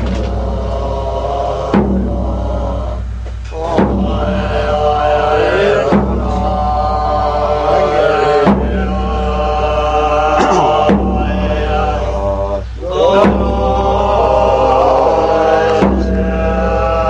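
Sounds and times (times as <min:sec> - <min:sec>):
monks chanting in low voices: 0:00.0 - 0:17.0.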